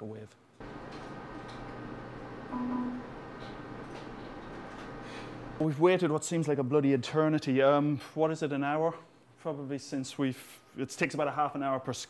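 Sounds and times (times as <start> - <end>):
electronics humming: 0.6 - 5.6
brief low tone: 2.5 - 3.1.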